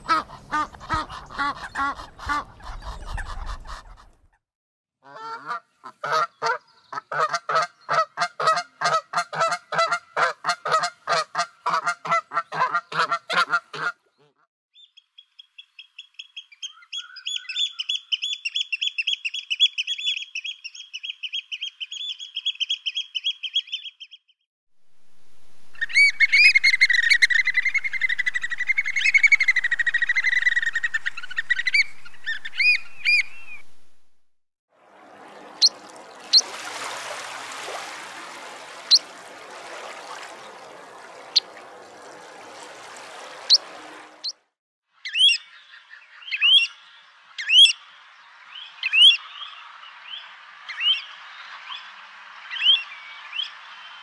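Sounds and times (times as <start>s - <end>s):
geese honking: 0.0s - 4.2s, 5.0s - 14.0s.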